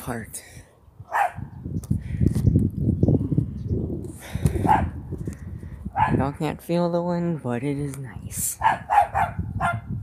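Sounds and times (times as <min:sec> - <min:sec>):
wind buffeting microphone: 0:00.0 - 0:10.0
dog barking: 0:01.1 - 0:01.5, 0:04.6 - 0:05.0, 0:06.0 - 0:06.2, 0:08.6 - 0:09.9.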